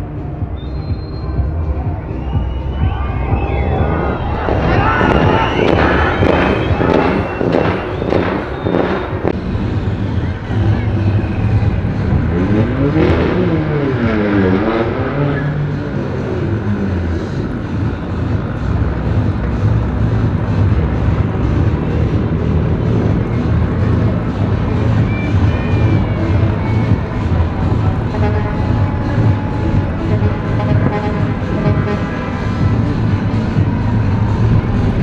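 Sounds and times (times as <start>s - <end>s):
car engines rumbling: 0.0s - 35.0s
engine pitch sweeping up and down: 0.0s - 35.0s.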